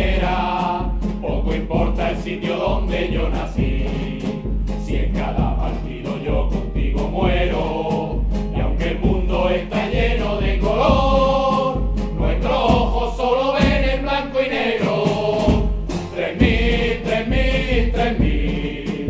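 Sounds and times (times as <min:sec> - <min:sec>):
band with steady beat: 0:00.0 - 0:14.2, 0:14.8 - 0:19.0
group singing football anthem: 0:00.0 - 0:19.0.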